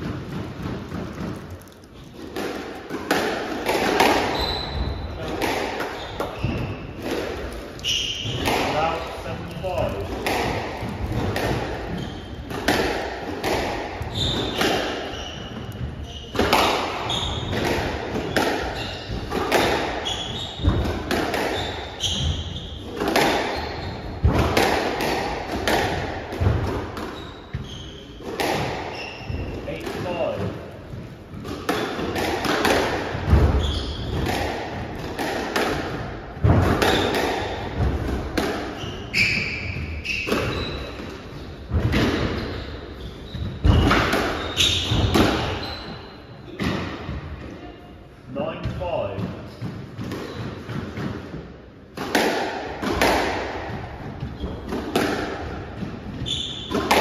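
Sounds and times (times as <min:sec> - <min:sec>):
squash ball cracking off rackets: 0:00.0 - 0:09.0, 0:09.7 - 0:22.3, 0:22.9 - 0:27.6, 0:51.9 - 0:57.0
shoes squeaking on wooden floor: 0:04.0 - 0:07.2, 0:07.8 - 0:09.8, 0:10.8 - 0:12.6, 0:14.0 - 0:24.6, 0:26.9 - 0:32.2, 0:33.2 - 0:35.0, 0:38.6 - 0:50.8, 0:53.8 - 0:57.0
ball smacking against walls: 0:48.7 - 0:57.0.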